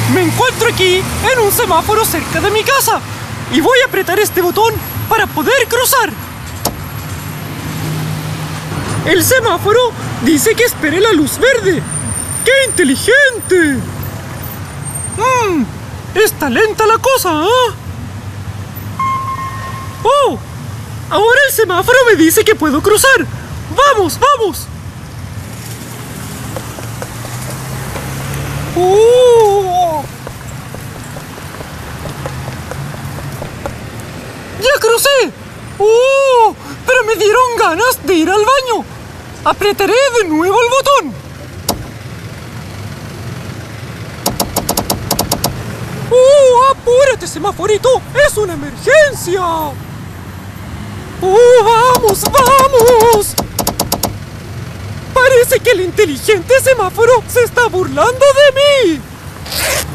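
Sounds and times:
vehicle engine hum: 0.0 - 12.8, 23.3 - 37.5, 38.3 - 56.0, 56.7 - 59.9
passing cars traffic noise: 0.0 - 59.9
crossing signal high beep: 19.0 - 20.1
push button click: 44.3 - 45.6.

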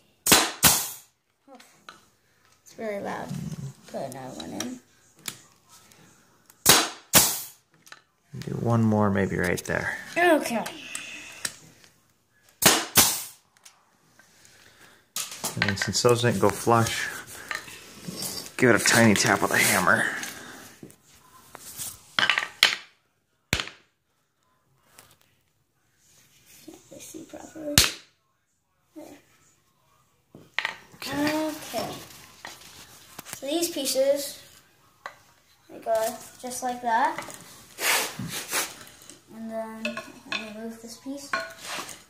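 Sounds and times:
nail gun firing: 0.2 - 1.0, 6.6 - 7.5, 12.6 - 13.4.

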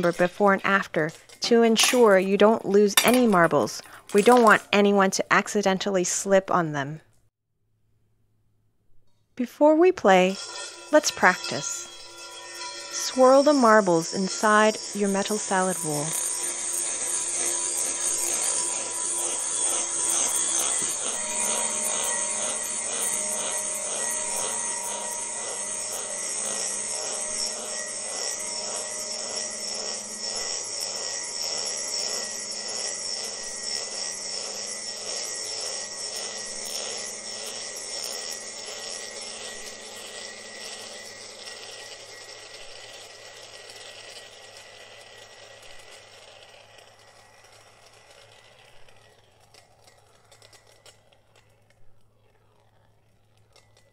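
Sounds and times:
metal bowl ringing: 0.0 - 4.7, 10.0 - 42.4
marbles rolling in metal bowl: 0.0 - 6.3, 10.0 - 53.9.

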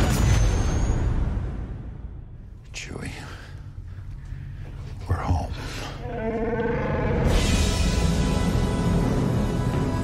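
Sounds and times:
person whispering: 2.7 - 3.7.

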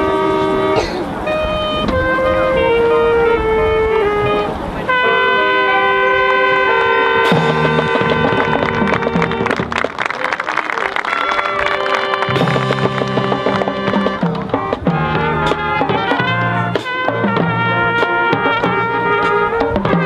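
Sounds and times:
wind instruments holding chords: 0.0 - 20.0
drums and cymbals: 7.3 - 9.5, 12.3 - 20.0.

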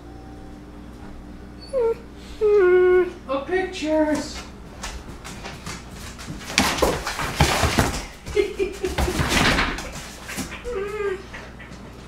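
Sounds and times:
dog whining: 0.0 - 3.3, 10.4 - 11.8.

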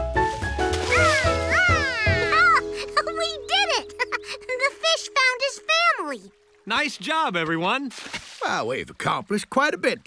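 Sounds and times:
cartoon background music: 0.0 - 6.5.

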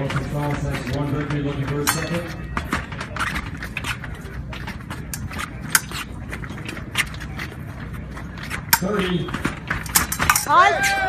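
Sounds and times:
fencers' footsteps and stamps: 0.0 - 11.0.

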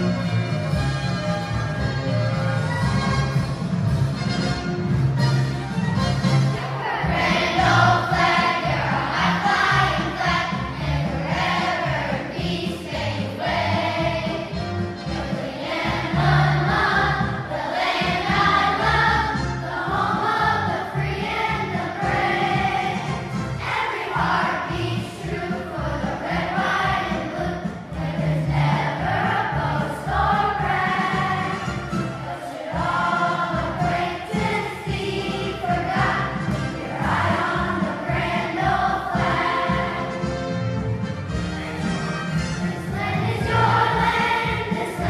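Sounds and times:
children's choir singing: 6.5 - 42.0, 42.6 - 45.0.

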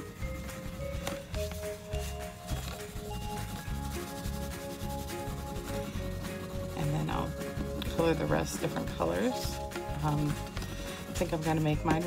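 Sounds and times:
crayon scratching on cardboard: 0.0 - 10.6
soft background music: 0.0 - 12.0.

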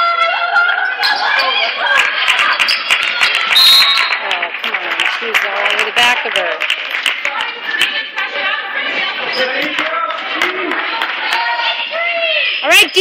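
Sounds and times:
sharp claps and knocks: 2.0 - 8.0.

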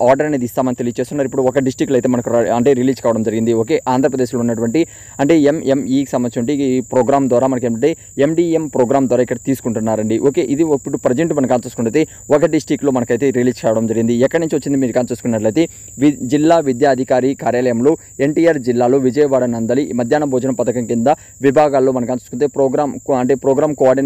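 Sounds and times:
faint high-pitched whine: 0.0 - 24.0
man talking: 0.0 - 24.0.

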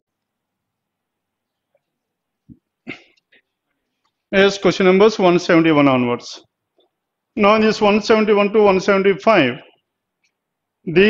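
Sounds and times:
faint cough-like throat sound: 2.8 - 3.4.

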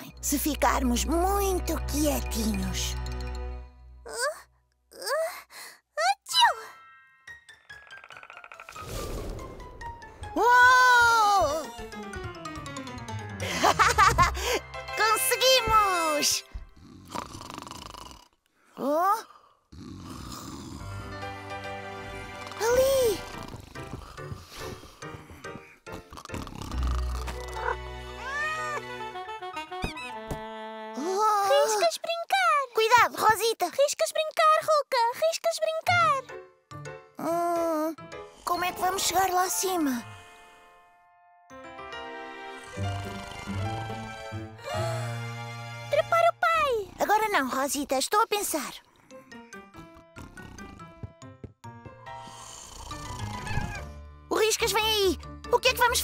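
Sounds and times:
cartoon background music: 0.0 - 4.6, 6.0 - 16.8, 20.8 - 56.0
cartoon music with plucked notes: 11.3 - 16.4
cat growling and hissing: 46.6 - 47.2, 52.4 - 53.9.

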